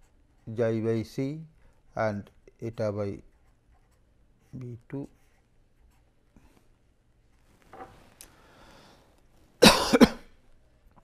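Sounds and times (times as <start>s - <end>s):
person coughing: 9.6s - 10.4s.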